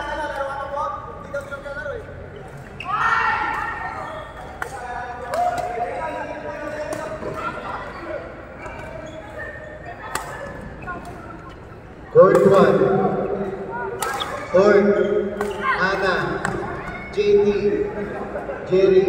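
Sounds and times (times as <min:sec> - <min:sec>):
loud voices: 0:00.0 - 0:19.0
rackets striking shuttlecock: 0:10.0 - 0:11.2, 0:12.3 - 0:12.9, 0:13.9 - 0:14.5, 0:15.2 - 0:16.7.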